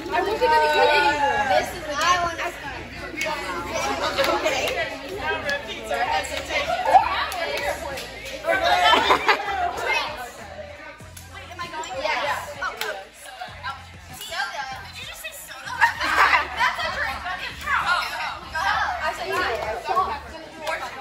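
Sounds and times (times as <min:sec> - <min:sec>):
women talking and chanting: 0:00.0 - 0:21.0.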